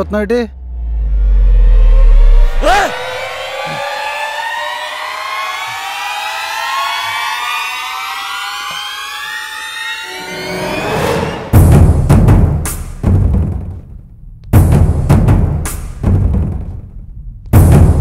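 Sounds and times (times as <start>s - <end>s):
rising film score tones: 0.0s - 11.9s.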